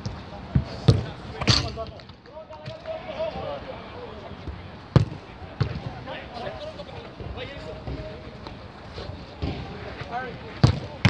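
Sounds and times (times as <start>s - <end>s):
football kicks thudding: 0.0s - 2.0s, 5.0s - 6.0s, 10.6s - 11.0s.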